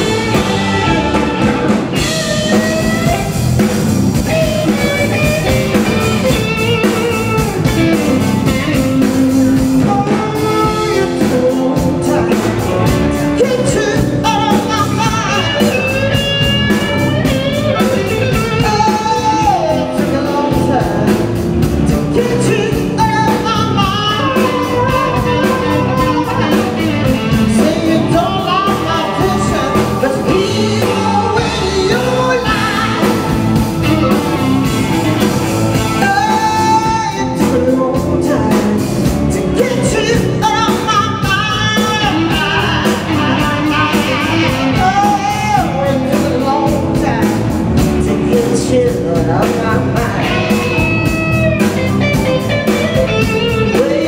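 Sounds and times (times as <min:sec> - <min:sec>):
blues band playing: 0:00.0 - 0:54.0
electric guitar bending notes: 0:00.0 - 0:54.0.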